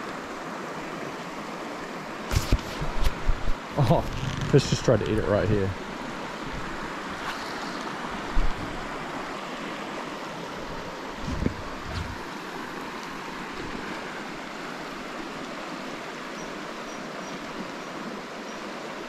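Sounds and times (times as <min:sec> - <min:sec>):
river water rushing over stones: 0:00.0 - 0:19.0.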